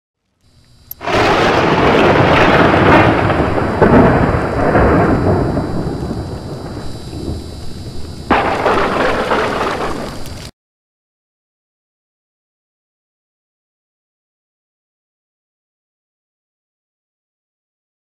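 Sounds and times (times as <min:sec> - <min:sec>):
steady rain: 0:00.9 - 0:10.5
loud thunderclap: 0:01.0 - 0:10.3
thunder rolling: 0:01.0 - 0:10.5.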